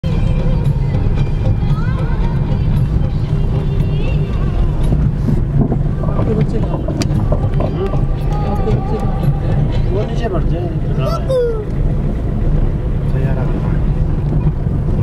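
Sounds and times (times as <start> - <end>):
road noise inside cabin: 0.0 - 15.0
vehicle engine rumble: 0.0 - 15.0.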